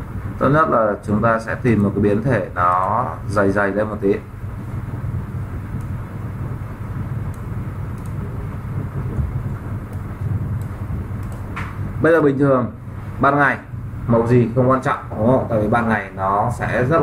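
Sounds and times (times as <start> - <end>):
faint hum: 0.0 - 17.0
low rumble: 2.4 - 17.0
faint sharp clicks: 7.3 - 8.2, 10.6 - 11.8.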